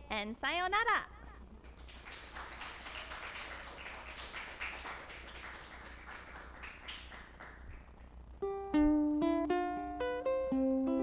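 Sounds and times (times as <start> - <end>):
people clapping: 1.5 - 8.2.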